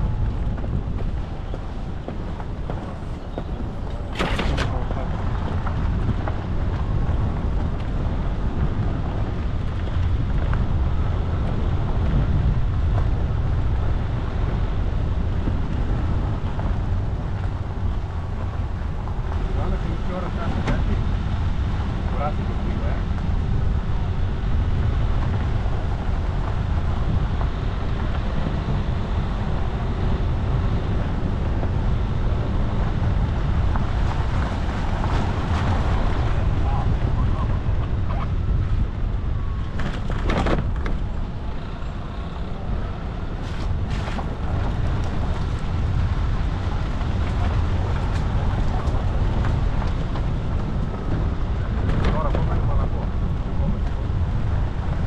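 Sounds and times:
gravel clicking: 0.0s - 55.0s
vehicle engine and tyre rumble: 0.0s - 55.0s
wind on microphone: 0.0s - 55.0s.

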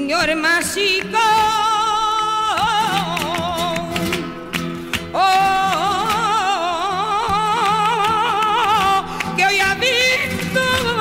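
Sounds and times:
guitar accompaniment: 0.0s - 11.0s
woman singing with vibrato: 0.0s - 11.0s.

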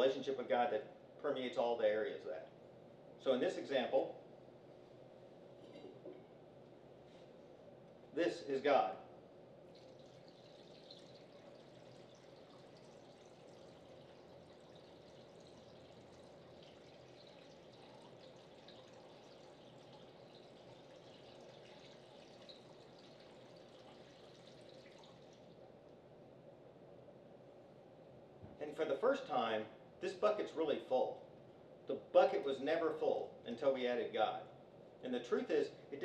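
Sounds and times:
water trickling into glass vase: 9.6s - 25.7s.

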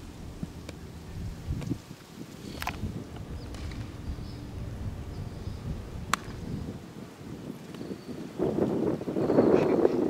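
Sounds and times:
wind rumble on microphone: 0.0s - 10.0s
sharp crack: 2.4s - 4.6s, 6.0s - 6.7s.

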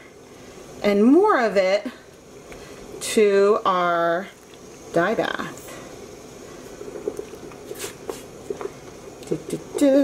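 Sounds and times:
dye bath bubbling and sloshing: 6.5s - 7.8s.

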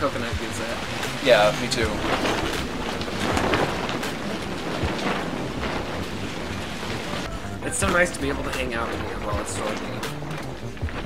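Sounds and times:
plastic sheeting flapping: 0.0s - 11.0s
wind and rain rushing: 0.0s - 11.0s.

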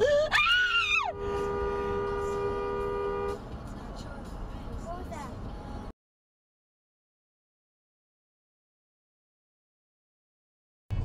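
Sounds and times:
road and tyre noise: 0.0s - 6.0s
two-tone car horn blast: 1.1s - 3.4s.

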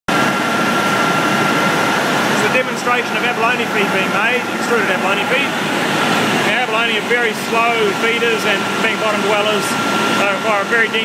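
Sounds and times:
constant high whine: 0.1s - 11.0s
machinery drone: 0.1s - 11.0s.

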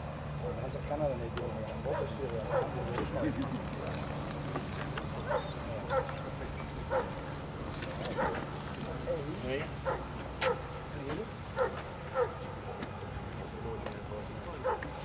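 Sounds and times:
dog barking: 1.9s - 2.8s, 5.2s - 7.2s, 8.2s - 8.5s, 9.8s - 10.7s, 11.6s - 12.4s, 14.6s - 15.0s.

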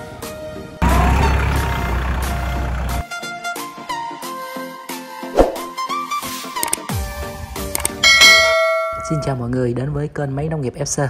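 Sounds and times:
clicks: 6.6s - 6.8s, 7.8s - 8.0s
bright bell chime: 8.0s - 9.4s.

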